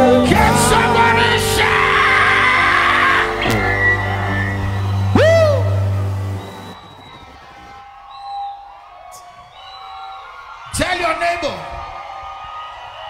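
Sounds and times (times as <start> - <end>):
congregation voices: 0.0 - 6.7
live band sustained note: 0.0 - 7.4
person whooping: 1.6 - 9.9.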